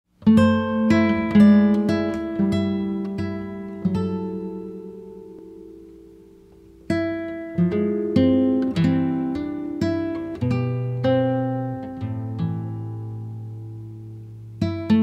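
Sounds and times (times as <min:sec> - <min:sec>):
acoustic guitar plucking: 0:00.1 - 0:15.0.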